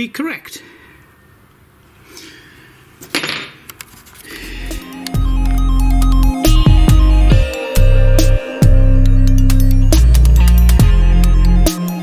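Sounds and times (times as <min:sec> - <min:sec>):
electronic music: 0:04.6 - 0:12.0.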